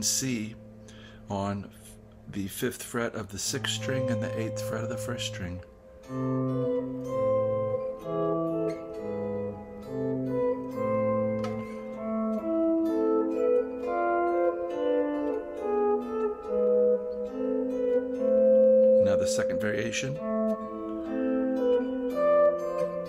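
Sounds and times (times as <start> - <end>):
clean electric guitar melody: 0.0 - 2.3, 3.2 - 23.0.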